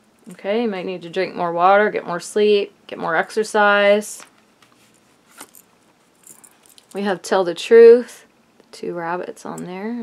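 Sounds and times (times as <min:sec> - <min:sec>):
soft rustles and small ticks: 0:04.2 - 0:07.0.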